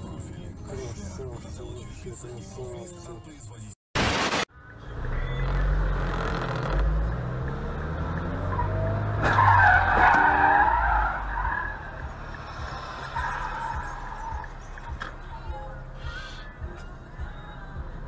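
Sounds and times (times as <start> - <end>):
tv static burst: 4.0 - 4.5
car engine revving: 4.1 - 15.2.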